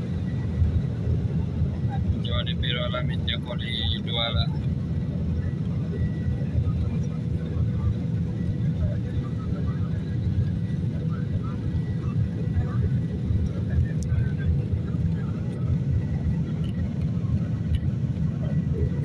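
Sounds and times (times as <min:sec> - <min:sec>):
airliner cabin rumble: 0:00.0 - 0:19.0
faint steady whine: 0:00.0 - 0:19.0.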